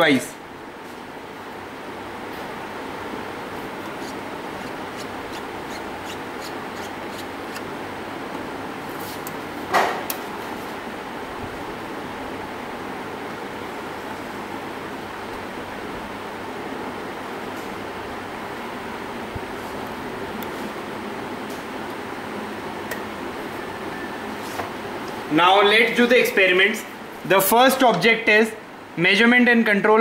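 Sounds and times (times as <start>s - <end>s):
air conditioner hum and hiss: 0.0s - 30.0s.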